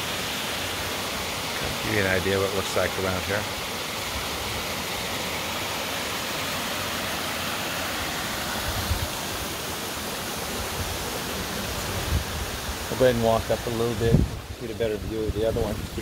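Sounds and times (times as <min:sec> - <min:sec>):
waterfall rushing: 0:00.0 - 0:16.0.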